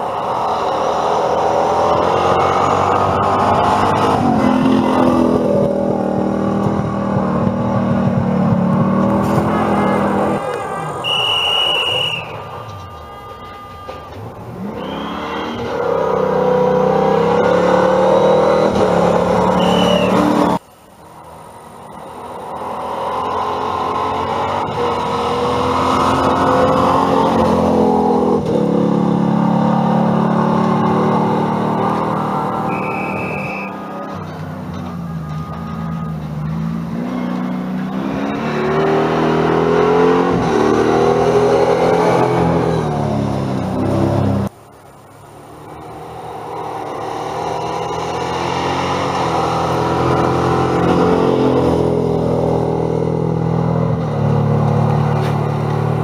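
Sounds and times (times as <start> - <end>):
rally car engines revving: 0.0 - 12.9, 13.8 - 56.0.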